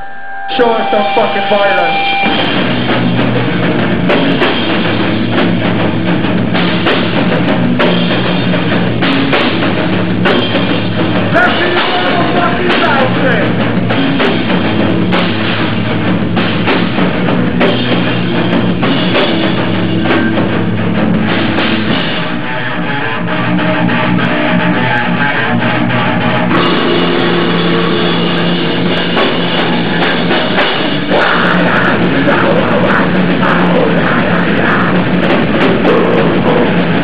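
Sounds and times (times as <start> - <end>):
drum kit with cymbals: 0.0 - 37.0
electric guitar: 0.0 - 37.0.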